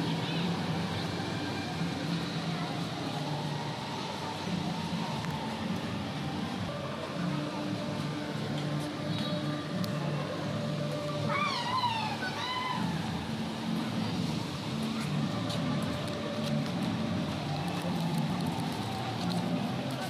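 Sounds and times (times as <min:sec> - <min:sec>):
faint music: 0:00.0 - 0:20.0.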